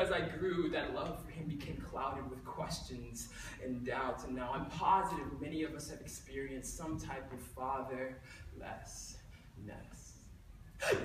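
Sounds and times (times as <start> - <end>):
man speaking loudly: 0.0 - 10.2
man gasping: 10.8 - 11.0.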